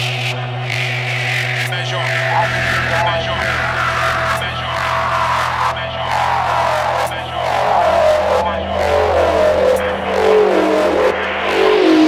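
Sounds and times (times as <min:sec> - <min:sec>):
drum and bass music: 0:00.0 - 0:12.0.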